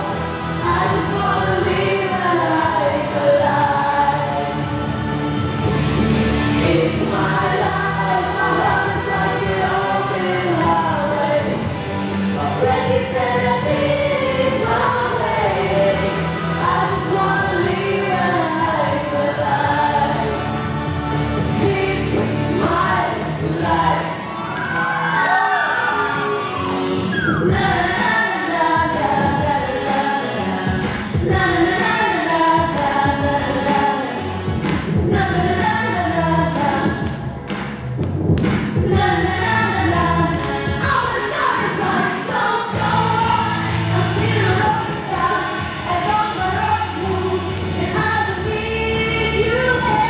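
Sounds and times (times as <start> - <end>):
group singing: 0.0 - 24.8, 27.2 - 37.2, 38.8 - 50.0
instrumental accompaniment with bass: 0.0 - 50.0.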